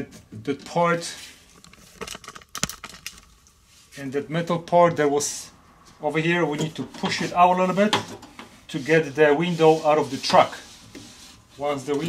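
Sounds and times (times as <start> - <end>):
small clicks and knocks: 1.5 - 3.5.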